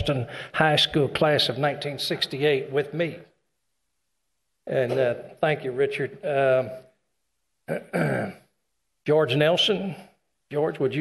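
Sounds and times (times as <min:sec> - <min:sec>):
man clearing throat: 0:07.7 - 0:08.5.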